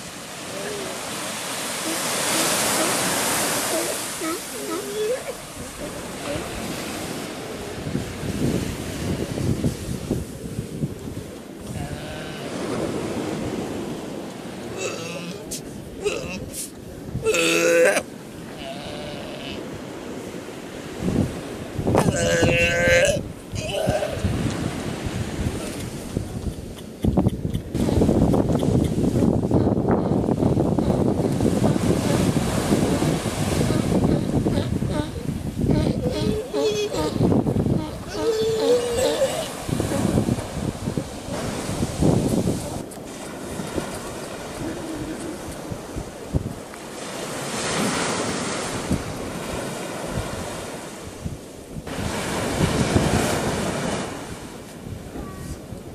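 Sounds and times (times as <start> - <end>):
wind on microphone: 0.0 - 14.2, 18.6 - 55.9
surf washing: 0.0 - 55.9.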